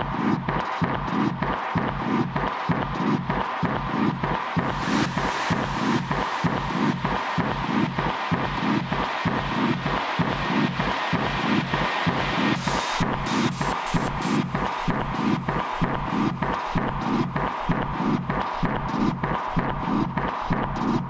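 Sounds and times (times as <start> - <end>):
dark distorted techno: 0.0 - 21.0.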